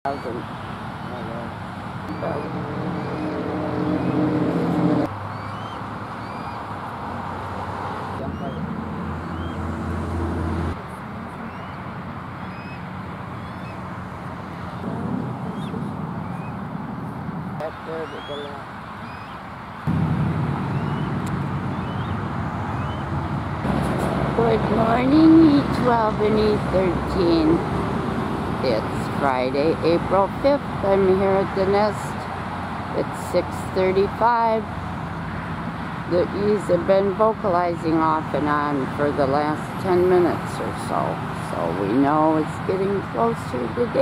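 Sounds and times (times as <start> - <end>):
road traffic noise: 0.0 - 44.0
low hum: 2.1 - 5.1, 19.9 - 30.2
eagles chirping: 2.1 - 6.7, 8.2 - 9.8, 11.3 - 19.8, 20.4 - 23.3.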